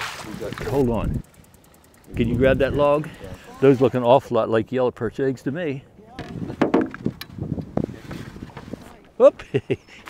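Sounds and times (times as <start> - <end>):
wind rumble on microphone: 0.6 - 1.2, 2.1 - 3.4, 6.2 - 9.0.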